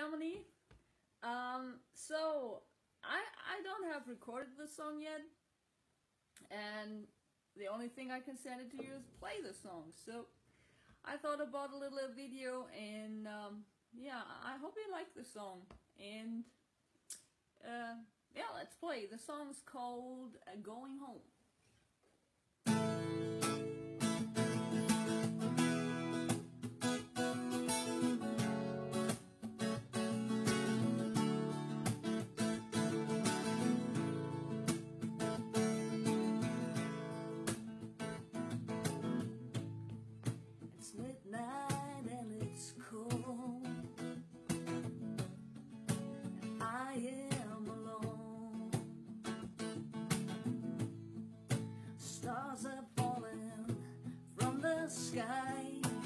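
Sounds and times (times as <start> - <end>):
acoustic guitar strumming: 22.6 - 41.1, 43.0 - 52.2, 53.0 - 56.0.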